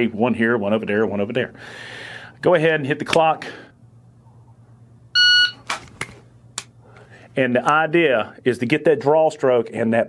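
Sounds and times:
shot timer start beep: 0:05.2 - 0:05.6.

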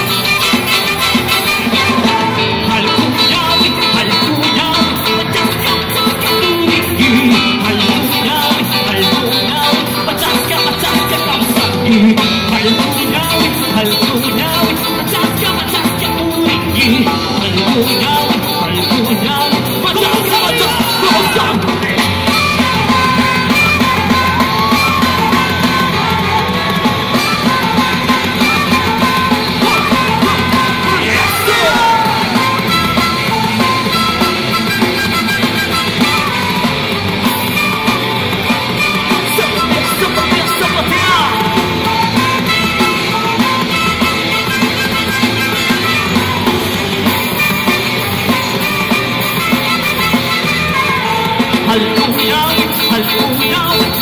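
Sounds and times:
bass guitar: 0:00.0 - 0:54.0
drums: 0:00.0 - 0:54.0
electric guitars: 0:00.0 - 0:54.0
man yelling lead vocal: 0:00.1 - 0:33.9, 0:39.0 - 0:42.6, 0:51.4 - 0:54.0.

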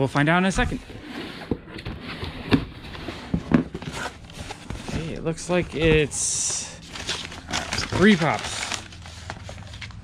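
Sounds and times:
cardboard rustling: 0:00.6 - 0:10.0.

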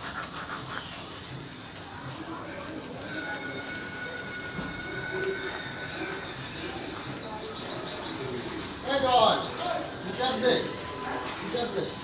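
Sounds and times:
small birds twittering: 0:00.0 - 0:12.0.

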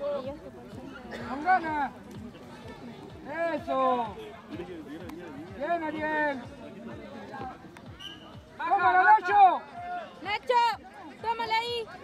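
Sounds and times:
spectators chatting: 0:00.0 - 0:12.0.

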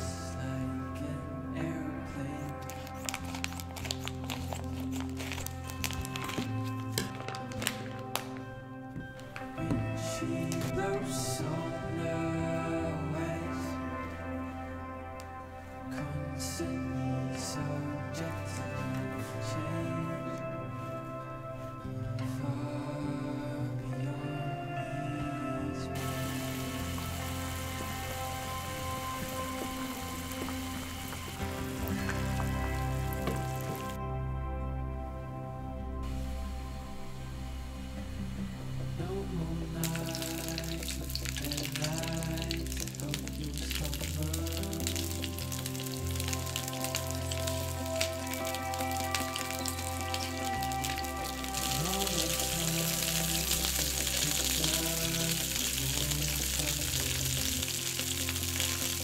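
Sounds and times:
soft background music: 0:00.0 - 0:59.0
sausages sizzling in a frying pan: 0:26.0 - 0:34.0, 0:39.9 - 0:59.0
water boiling in a pot: 0:26.0 - 0:34.0, 0:39.8 - 0:59.0.

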